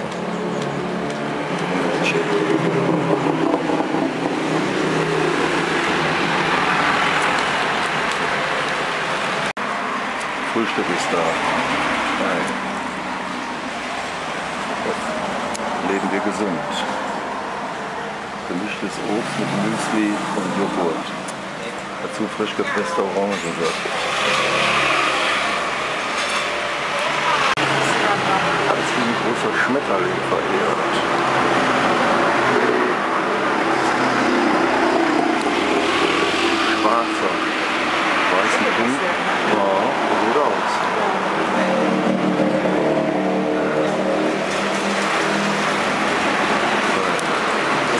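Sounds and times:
road traffic hum: 0.0 - 47.9.

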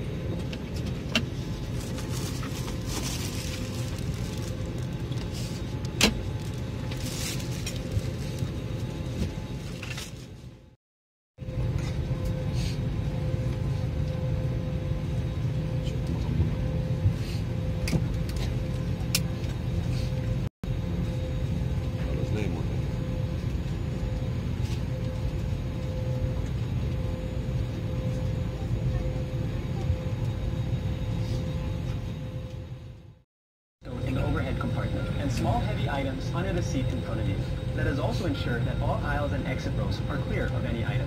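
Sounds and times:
airliner cabin rumble and hum: 0.0 - 10.8, 11.4 - 41.0.

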